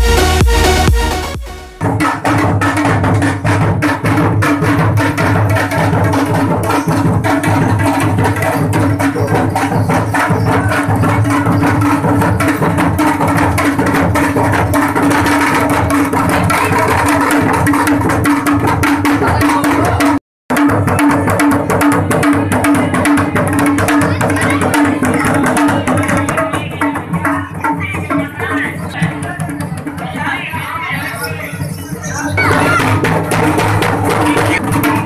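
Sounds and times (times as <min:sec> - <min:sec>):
hand drums fast rhythm: 0:00.0 - 0:31.6, 0:32.2 - 0:35.0.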